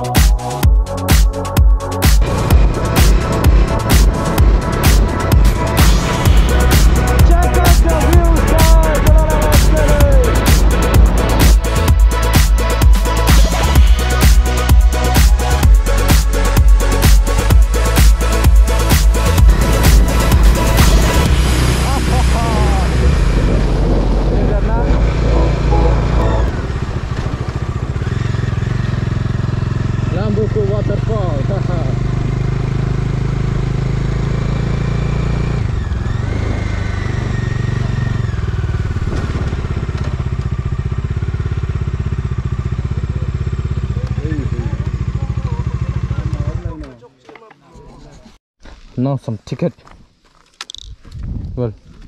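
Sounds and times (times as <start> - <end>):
motorcycle engine running: 0.0 - 47.0.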